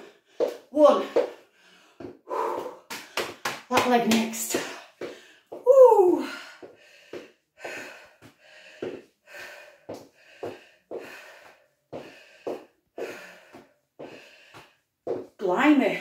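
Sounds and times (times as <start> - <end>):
woman breathing hard: 1.2 - 3.6, 4.5 - 5.6, 6.2 - 15.2.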